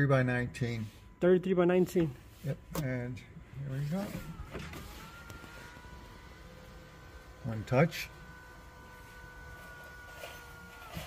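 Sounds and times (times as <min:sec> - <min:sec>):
sunroof motor whining: 0:00.0 - 0:11.0.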